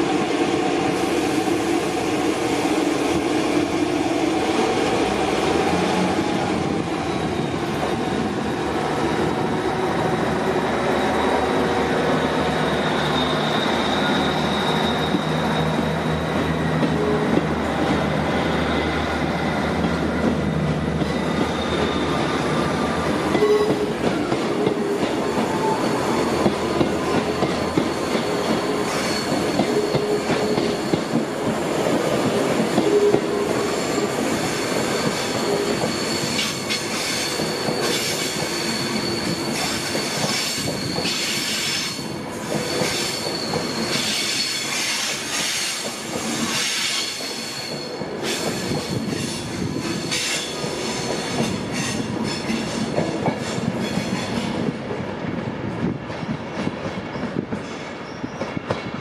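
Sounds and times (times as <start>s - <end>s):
train wheels squealing: 10.6s - 17.4s, 20.6s - 31.4s, 32.6s - 54.5s, 57.0s - 58.8s.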